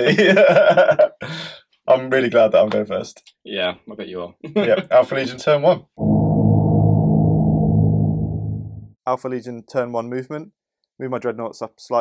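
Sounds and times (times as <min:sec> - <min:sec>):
deep gong-like stinger: 0:06.0 - 0:09.0.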